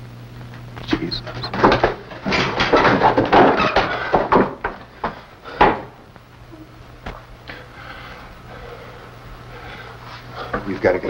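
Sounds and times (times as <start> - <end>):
low steady hum: 0.0 - 11.0
wooden knocks and clatters: 1.3 - 5.9.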